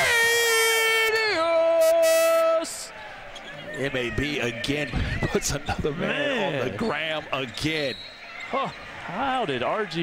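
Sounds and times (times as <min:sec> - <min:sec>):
man calling out excitedly: 0:00.0 - 0:02.9.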